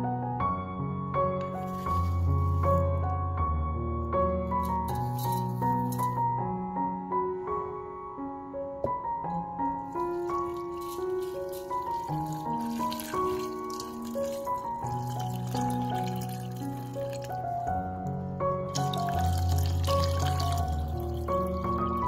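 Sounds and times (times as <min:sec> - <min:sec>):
background piano music: 0:00.0 - 0:22.0
water pouring into a pot: 0:09.8 - 0:17.7, 0:18.7 - 0:22.0.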